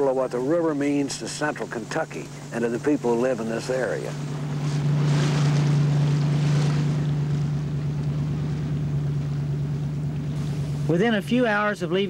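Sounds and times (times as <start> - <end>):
motorboat engine droning: 0.0 - 12.0
water wash: 0.0 - 12.0.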